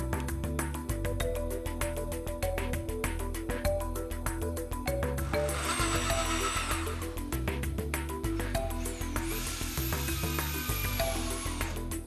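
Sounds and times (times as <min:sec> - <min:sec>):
background music with beat: 0:00.0 - 0:12.0
electric drill whining: 0:05.0 - 0:07.6, 0:08.3 - 0:12.0.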